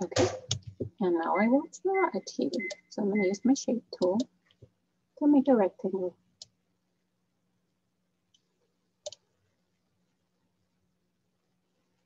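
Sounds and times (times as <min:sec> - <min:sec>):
computer mouse clicks: 0:00.2 - 0:00.8, 0:04.0 - 0:04.7, 0:08.3 - 0:09.2.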